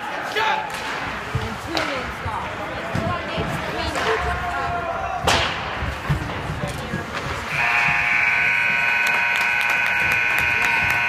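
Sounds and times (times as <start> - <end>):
scoreboard horn buzzing: 7.5 - 11.0.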